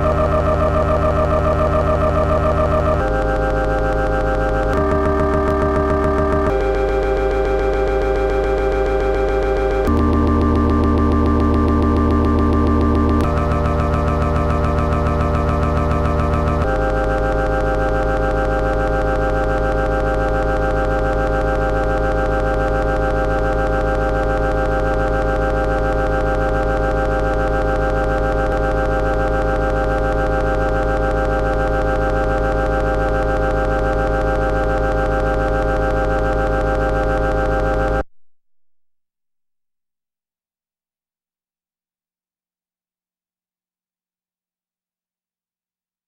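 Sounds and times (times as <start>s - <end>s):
steady electronic drone: 0.0s - 38.0s.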